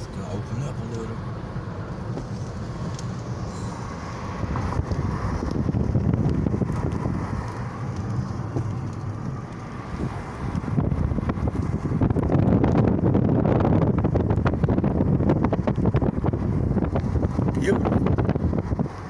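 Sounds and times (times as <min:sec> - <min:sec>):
road and engine rumble: 0:00.0 - 0:19.0
wind buffeting microphone: 0:04.1 - 0:19.0.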